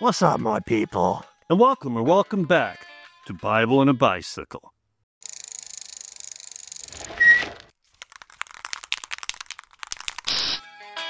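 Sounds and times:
quick irregular clicks: 0:08.0 - 0:10.6.

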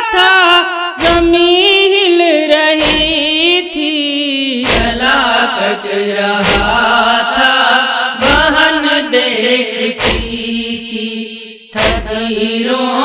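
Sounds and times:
chanted lament: 0:00.0 - 0:13.0
deep thuds: 0:02.8 - 0:03.3, 0:04.6 - 0:05.1, 0:06.4 - 0:06.9, 0:08.2 - 0:08.6, 0:10.0 - 0:10.5, 0:11.8 - 0:12.2.

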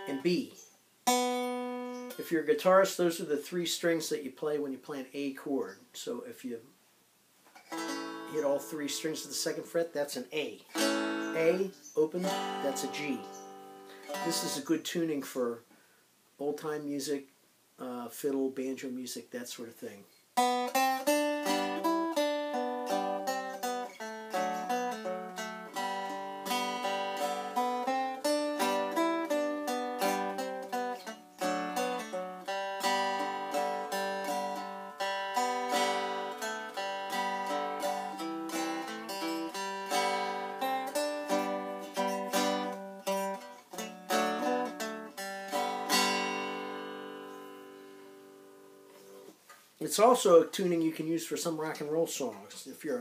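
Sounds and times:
cigar box guitar playing fiddle tune: 0:00.0 - 0:00.4, 0:01.0 - 0:03.7, 0:07.6 - 0:09.8, 0:10.7 - 0:14.8, 0:20.4 - 0:49.3.

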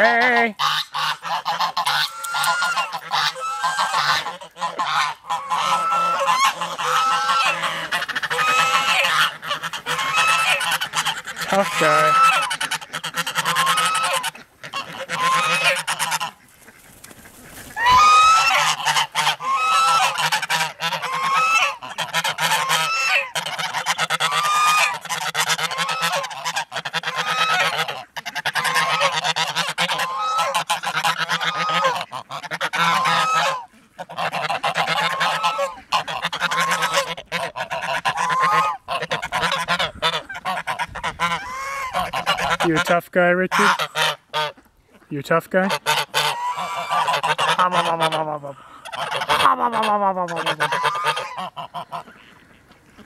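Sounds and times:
geese honking: 0:00.0 - 0:53.0.

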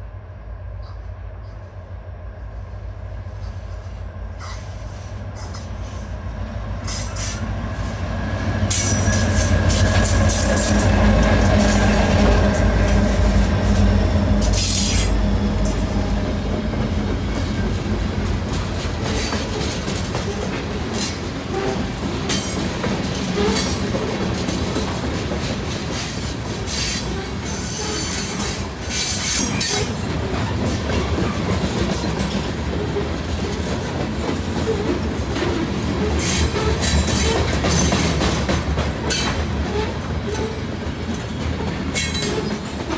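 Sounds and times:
diesel locomotive engines: 0:00.0 - 0:42.9
train wheels rumbling: 0:00.0 - 0:42.9
wheel squeal: 0:36.0 - 0:37.9.

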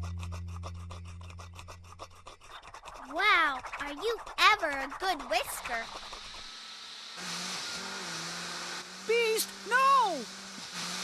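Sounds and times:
low held tone: 0:00.0 - 0:01.8
whisk beating in a bowl: 0:00.0 - 0:06.5.

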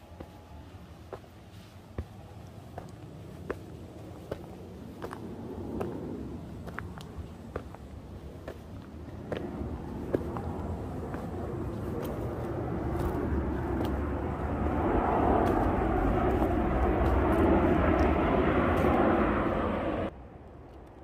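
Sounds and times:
airplane engine rumble: 0:00.0 - 0:21.0.

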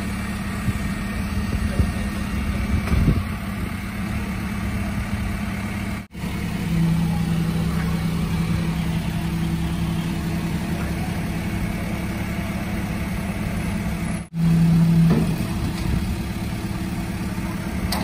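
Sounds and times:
truck engine humming: 0:00.0 - 0:18.0.

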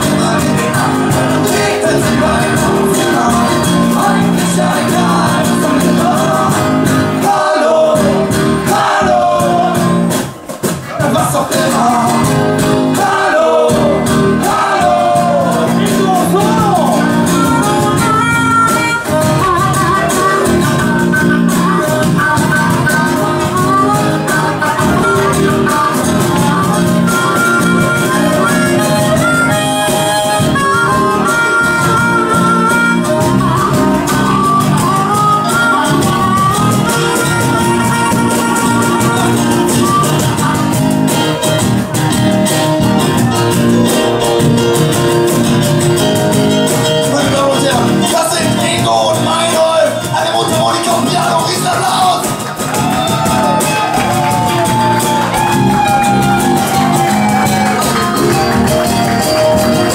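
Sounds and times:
male vocals: 0:00.0 - 0:10.1, 0:10.9 - 0:17.9, 0:47.0 - 0:52.4
bass line: 0:00.0 - 0:59.9
strummed acoustic guitar: 0:00.0 - 0:59.9
harmonica solo: 0:11.8 - 0:59.9.

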